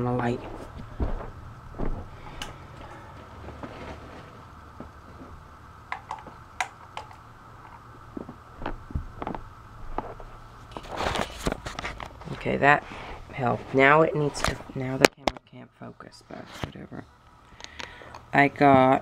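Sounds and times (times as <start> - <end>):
steady hum: 0.0 - 19.0.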